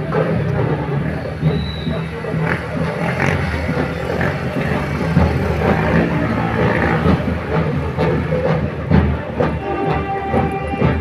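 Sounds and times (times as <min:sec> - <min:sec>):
band music: 0:00.0 - 0:11.0
marchers' voices: 0:00.0 - 0:11.0
vehicle engine running: 0:00.5 - 0:09.0.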